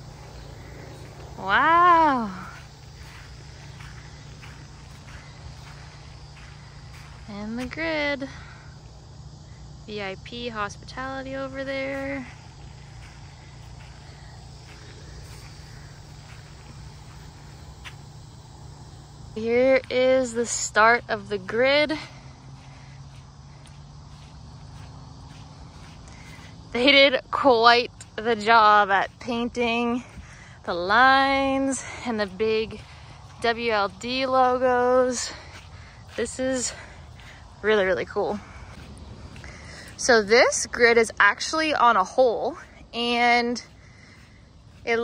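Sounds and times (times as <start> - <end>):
footsteps on turf: 0.0 - 9.0, 9.7 - 45.0
steady low hum: 0.0 - 45.0.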